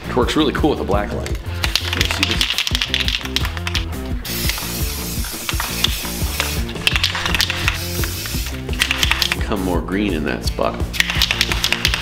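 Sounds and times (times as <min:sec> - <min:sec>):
aerosol spray can hissing: 0:01.6 - 0:09.4, 0:10.9 - 0:12.0.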